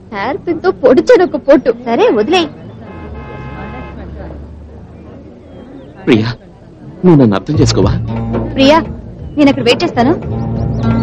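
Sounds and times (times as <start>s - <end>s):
low traffic rumble: 0.0s - 11.0s
vehicle horn: 2.0s - 4.2s.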